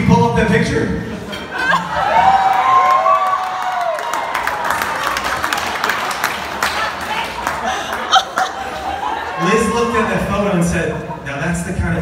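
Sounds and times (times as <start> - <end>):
crowd cheering and whooping: 1.5 - 10.5
hands clapping: 2.9 - 8.5.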